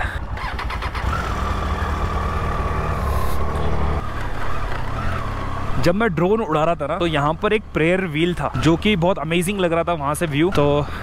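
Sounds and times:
motorcycle engine pulling away: 0:00.4 - 0:05.9.

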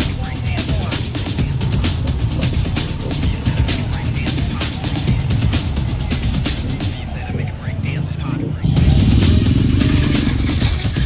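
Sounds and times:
vehicle engine passing: 0:00.0 - 0:11.0
voices: 0:00.0 - 0:11.0.

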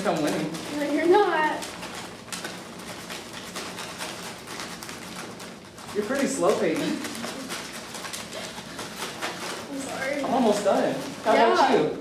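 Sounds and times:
paper bags crinkling: 0:00.0 - 0:12.0
popcorn pattering: 0:00.0 - 0:12.0.

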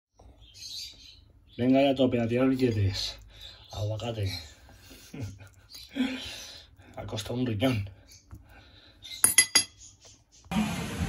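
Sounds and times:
fork clinking on ceramic plate: 0:09.2 - 0:09.8.

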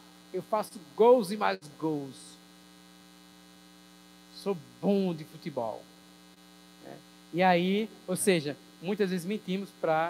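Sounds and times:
electrical mains hum: 0:00.0 - 0:10.0
person speaking: 0:00.4 - 0:02.4, 0:04.3 - 0:05.9, 0:06.8 - 0:10.0.

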